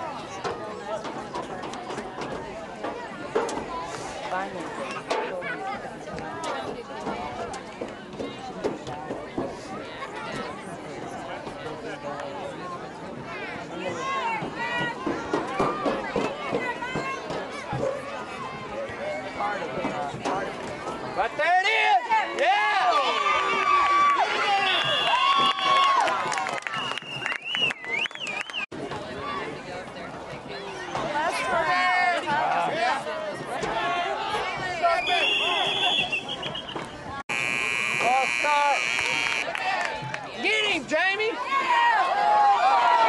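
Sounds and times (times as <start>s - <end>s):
scoreboard buzzer harsh tone: 37.3s - 39.5s.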